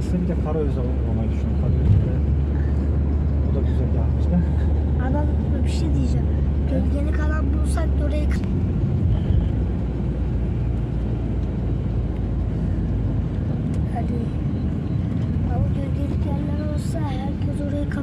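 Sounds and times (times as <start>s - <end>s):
car road rumble from inside: 0.0s - 18.0s.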